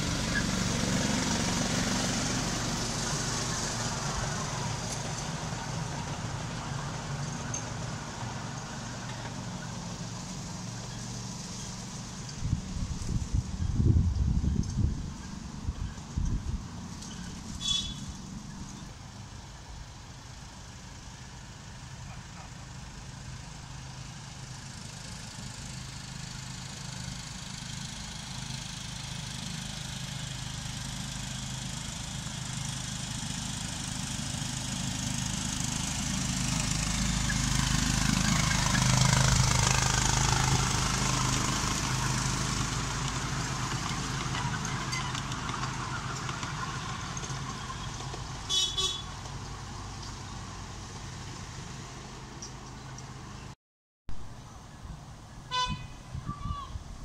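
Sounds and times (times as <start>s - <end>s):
miniature train passing: 0.0s - 53.5s
high-pitched horn toots: 17.6s - 18.2s, 48.5s - 49.1s, 55.5s - 56.7s.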